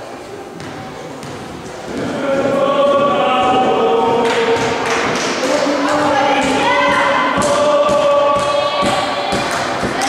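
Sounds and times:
group chanting in unison: 0:01.9 - 0:10.0.

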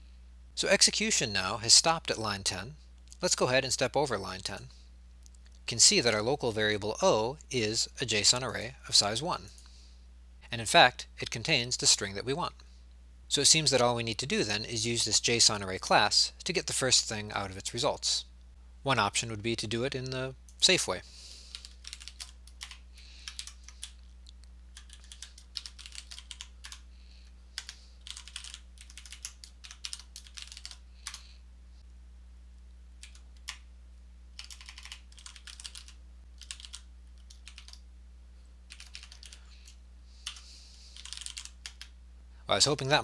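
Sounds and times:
keyboard typing: 0:21.5 - 0:26.8, 0:27.6 - 0:31.2, 0:33.0 - 0:33.6, 0:34.4 - 0:37.8, 0:38.7 - 0:40.4, 0:41.0 - 0:41.9.

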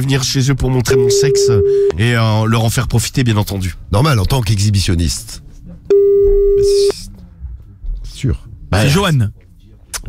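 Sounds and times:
telephone line beep: 0:01.0 - 0:01.9, 0:05.9 - 0:06.9.

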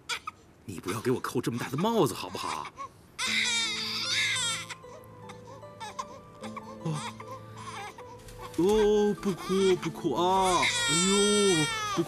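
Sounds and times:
newborn baby crying: 0:00.0 - 0:12.0
soft background music: 0:00.2 - 0:12.0.

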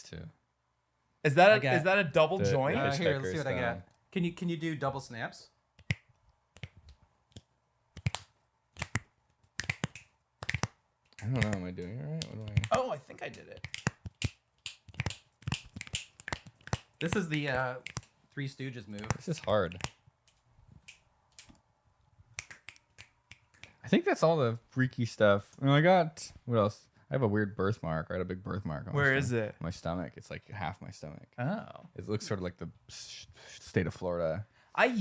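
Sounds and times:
finger snaps: 0:05.8 - 0:12.8, 0:13.6 - 0:18.1, 0:22.3 - 0:23.8.

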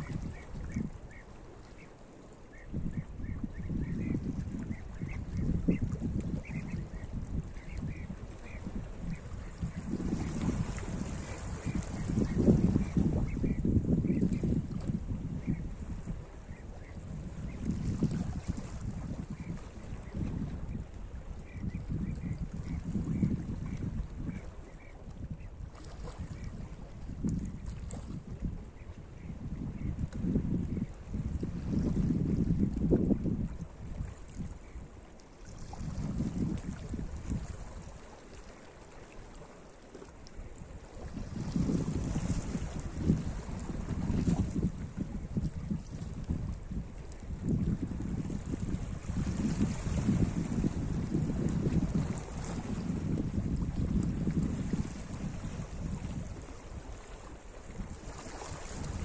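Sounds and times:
wind rumbling on microphone: 0:00.0 - 0:59.0.

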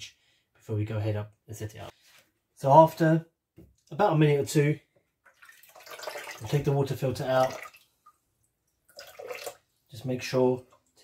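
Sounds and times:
water dripping and splashing: 0:05.2 - 0:09.7.

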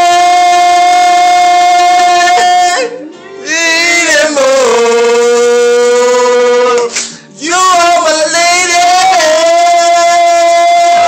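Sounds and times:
man singing long high note: 0:00.0 - 0:11.0.

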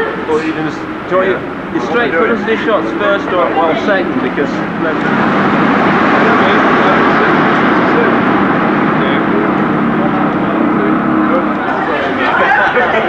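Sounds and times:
motor vehicle running: 0:00.0 - 0:13.0.

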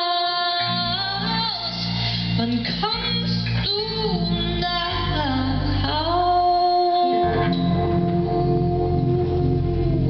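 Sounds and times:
woman singing wordless line: 0:00.0 - 0:09.2
instrumental accompaniment: 0:00.6 - 0:10.0.

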